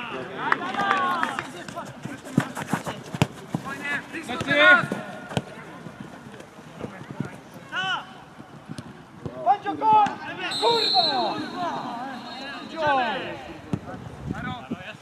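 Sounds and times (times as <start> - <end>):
footballers shouting: 9.3 - 13.8.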